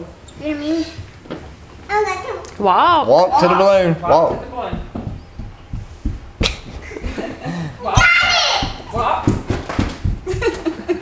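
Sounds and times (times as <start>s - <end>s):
sharp slaps and knocks: 4.3s - 7.3s, 7.9s - 10.7s.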